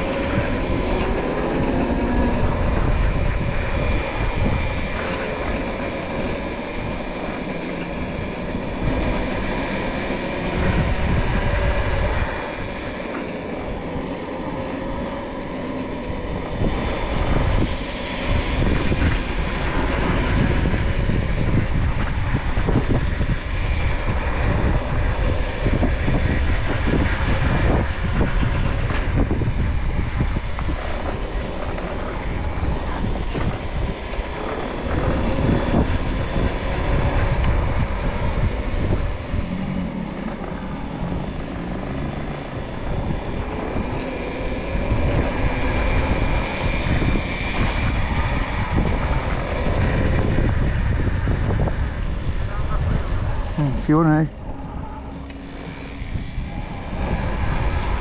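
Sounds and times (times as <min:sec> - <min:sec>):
electric motor whine: 0:00.0 - 0:58.0
tyre noise on tarmac: 0:00.0 - 0:58.0
wind buffeting microphone: 0:00.0 - 0:58.0.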